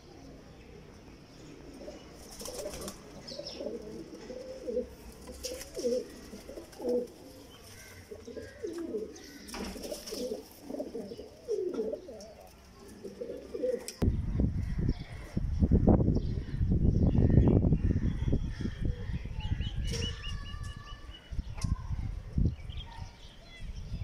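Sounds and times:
pigeons cooing: 1.3 - 14.0
wing flaps: 2.2 - 3.1.

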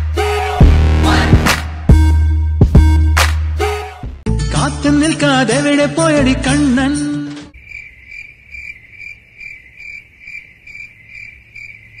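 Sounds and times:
cricket chirping: 7.6 - 12.0.

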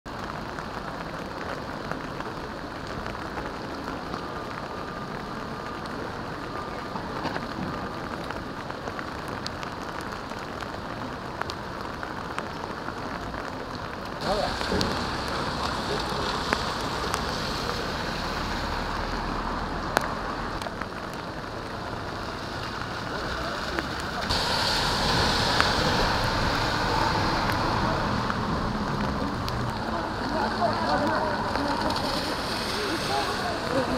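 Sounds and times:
rain splashing on pavement: 0.1 - 33.9
low rumble: 24.2 - 33.9.

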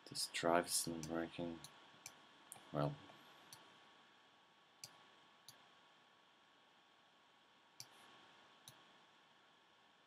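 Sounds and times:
computer mouse clicks: 4.8 - 5.6, 7.8 - 8.0.

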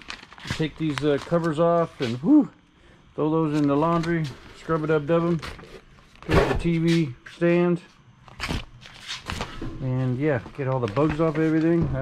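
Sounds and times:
man talking: 0.5 - 2.6, 3.2 - 5.5, 6.3 - 7.9, 9.8 - 12.0.

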